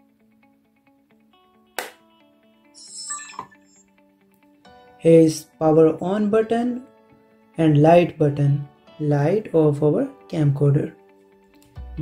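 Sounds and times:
faint plucked music: 4.0s - 12.0s.

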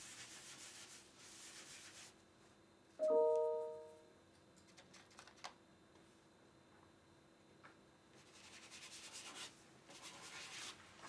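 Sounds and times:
scratchy drawing strokes on paper: 0.0s - 2.2s.

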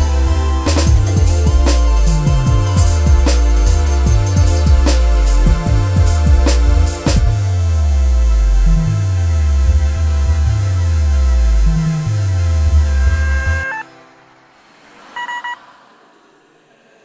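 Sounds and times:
electronic ambient music: 0.0s - 15.6s
stuttering electronic beep: 12.4s - 13.9s, 15.2s - 15.6s.

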